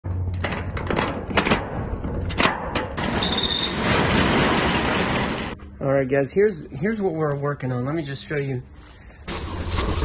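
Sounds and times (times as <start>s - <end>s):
roll-up door rattling: 0.4s - 5.6s
door squealing: 3.0s - 5.6s.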